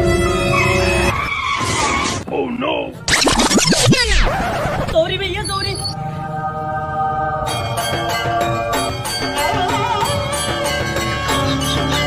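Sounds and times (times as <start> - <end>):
car tyres screeching: 0.5 - 2.3.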